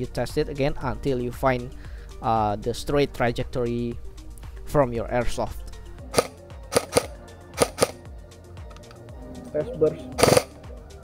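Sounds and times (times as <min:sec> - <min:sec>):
airsoft gun shots: 0:06.1 - 0:08.0, 0:10.2 - 0:10.5.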